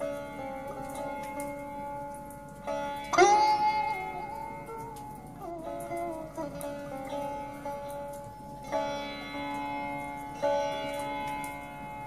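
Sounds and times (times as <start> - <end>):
sitar note ringing: 0.0 - 12.0.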